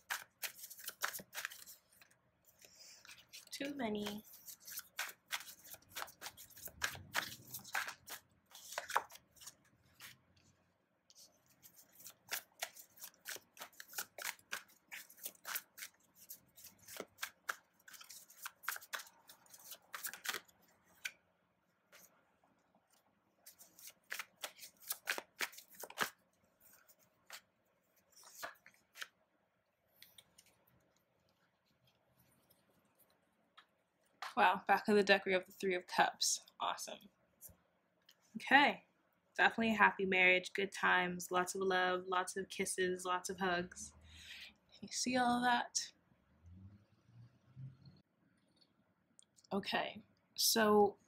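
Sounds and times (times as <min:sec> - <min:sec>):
cards being shuffled: 0:00.0 - 0:10.2, 0:11.1 - 0:21.2, 0:22.9 - 0:29.2.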